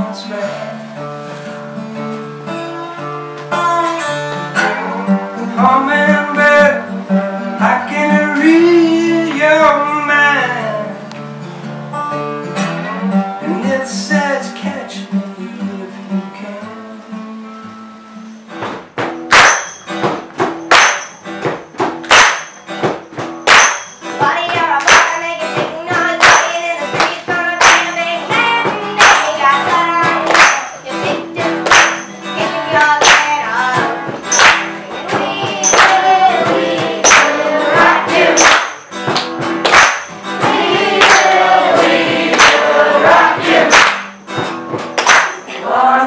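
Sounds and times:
acoustic guitar chords: 0:00.0 - 0:46.0
boy singing: 0:02.8 - 0:04.8, 0:24.2 - 0:31.6, 0:32.3 - 0:34.3, 0:34.9 - 0:38.5
sharp percussion hits: 0:18.6 - 0:45.7
tambourine struck: 0:19.0 - 0:25.3, 0:26.0 - 0:27.0, 0:27.6 - 0:45.7.

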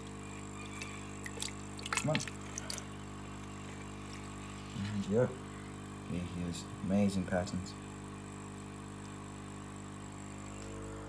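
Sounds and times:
low hum of held tones: 0:00.0 - 0:11.0
hand splashing in water: 0:01.2 - 0:02.9.

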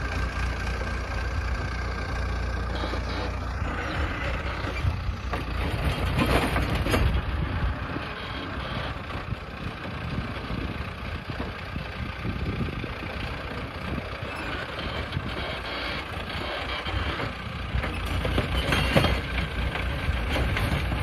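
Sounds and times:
rotavator tilling soil: 0:00.0 - 0:21.0
tractor engine running under load: 0:00.0 - 0:21.0.

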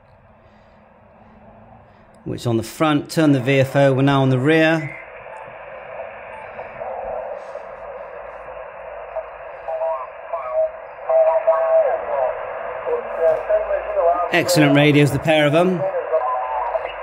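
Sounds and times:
distorted radio voices: 0:00.0 - 0:17.0
radio band noise hiss: 0:00.0 - 0:17.0.

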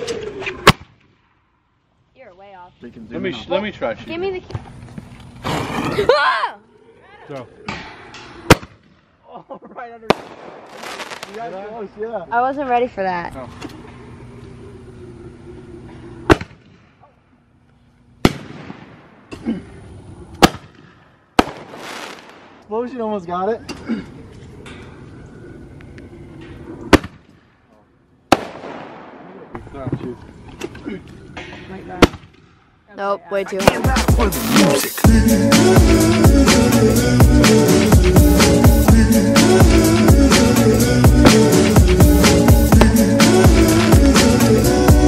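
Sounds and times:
firework bangs: 0:08.4 - 0:09.0, 0:10.0 - 0:11.7, 0:16.2 - 0:17.0, 0:18.2 - 0:19.3, 0:20.3 - 0:22.6, 0:26.9 - 0:27.6, 0:28.3 - 0:29.6, 0:33.5 - 0:35.0, 0:42.7 - 0:43.0
firework reports: 0:10.0 - 0:12.1, 0:21.4 - 0:23.0, 0:33.3 - 0:35.2
firework hiss: 0:10.1 - 0:11.7, 0:21.4 - 0:22.6, 0:33.5 - 0:36.0
firework crackling: 0:10.1 - 0:12.0, 0:20.1 - 0:22.7, 0:28.3 - 0:29.5, 0:33.4 - 0:36.8, 0:41.2 - 0:45.0
person calling out loudly: 0:33.2 - 0:35.1.

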